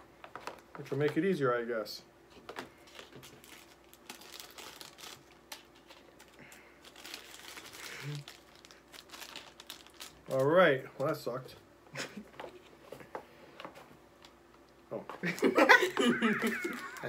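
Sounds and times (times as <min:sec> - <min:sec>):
packaging crinkling: 0:02.5 - 0:10.6, 0:16.3 - 0:17.0.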